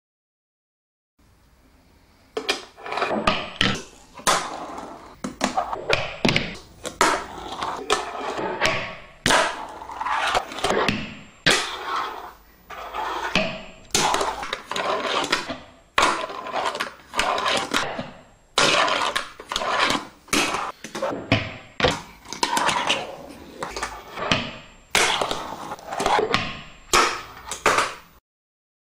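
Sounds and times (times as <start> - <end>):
fingerboard rolling: 2.4 - 18.0, 18.6 - 26.4.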